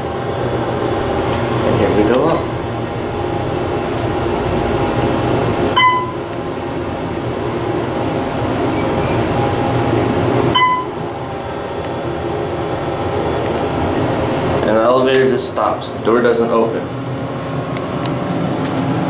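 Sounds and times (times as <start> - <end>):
elevator hum and rumble: 0.0 - 19.0
short beeps: 5.8 - 6.2, 10.5 - 11.0.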